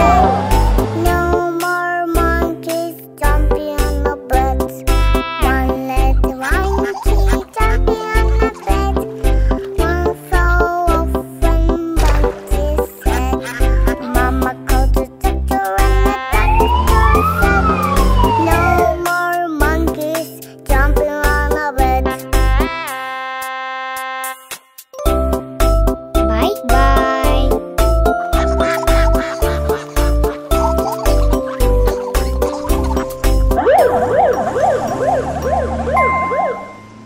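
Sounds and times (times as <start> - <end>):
steady high tone: 0.0 - 1.0, 33.6 - 37.0
ambulance siren wail: 0.0 - 1.2, 16.3 - 19.1, 33.4 - 37.0
low vehicle rumble: 0.0 - 1.6, 16.4 - 19.1, 27.8 - 37.0
children's song music: 0.0 - 37.0.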